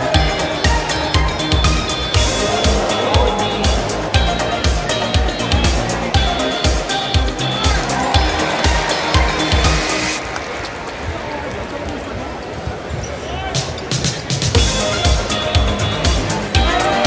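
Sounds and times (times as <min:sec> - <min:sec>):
music with thumping beat: 0:00.0 - 0:10.2, 0:13.9 - 0:17.0
large crowd noise: 0:00.0 - 0:17.0.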